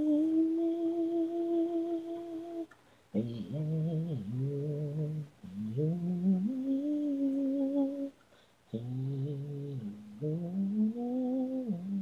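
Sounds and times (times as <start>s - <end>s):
person singing wordless melody: 0.0s - 12.0s.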